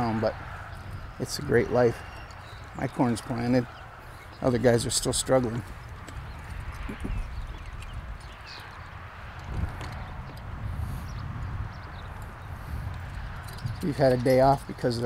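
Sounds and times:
harness jingling: 0.0 - 10.4, 11.7 - 15.0
horse hooves: 0.0 - 15.0.

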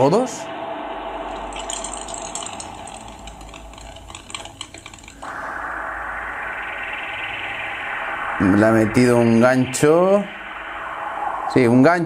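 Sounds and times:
low hum: 0.0 - 12.0
steady noise: 0.0 - 12.0.

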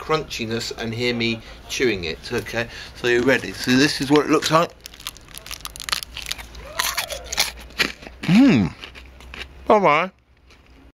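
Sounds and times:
crunchy chocolate bar chewing: 4.0 - 9.5.

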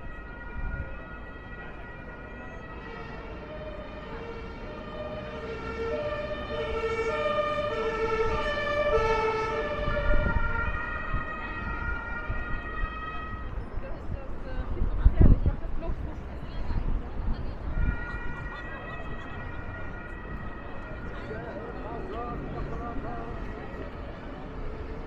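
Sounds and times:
two-tone emergency siren: 0.0 - 14.1, 17.6 - 25.0
city traffic rumble: 0.0 - 25.0.

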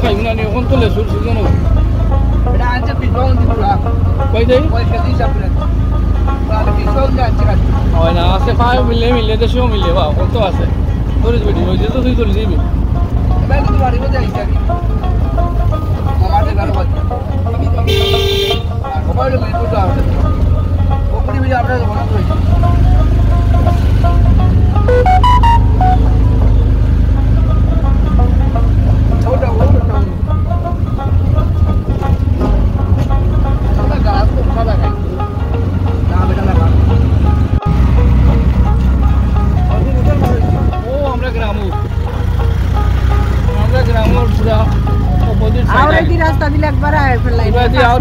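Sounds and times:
faint music: 0.0 - 48.0
vehicle rumbling along road: 0.0 - 48.0.

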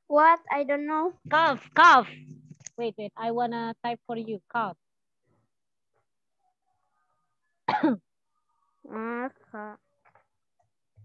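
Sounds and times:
person coughing: 7.7 - 8.0.

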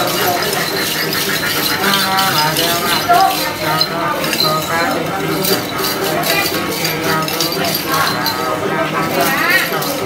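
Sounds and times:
chanting: 0.0 - 10.0
small metal bells jingling: 0.0 - 10.0.

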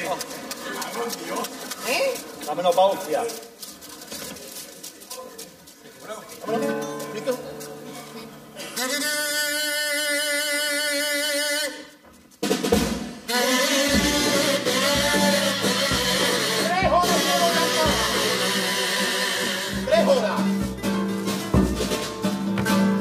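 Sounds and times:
snare drum: 12.4 - 23.0
bass drum: 12.5 - 18.7, 19.7 - 23.0
kazoos buzzing: 13.3 - 20.4.

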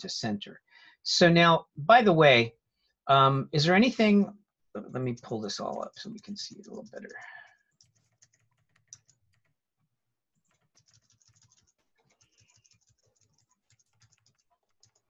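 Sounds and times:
keyboard typing clicks: 5.1 - 9.6, 10.4 - 15.0.

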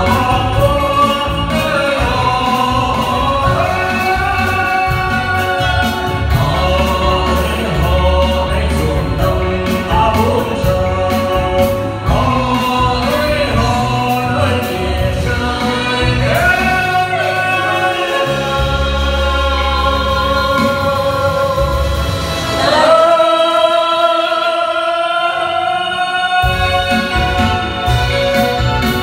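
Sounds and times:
live band with drums and bass: 0.0 - 29.0
man and woman singing duet: 0.0 - 29.0.

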